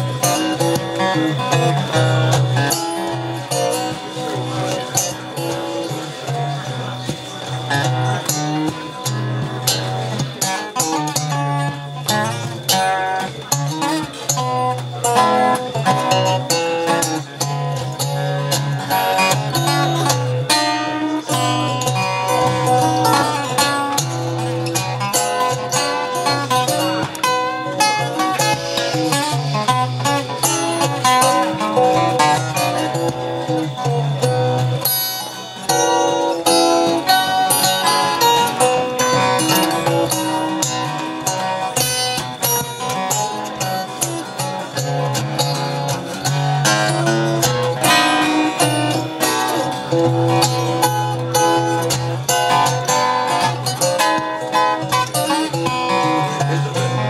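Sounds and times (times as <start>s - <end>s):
acoustic guitar fingerpicked: 0.0s - 57.0s.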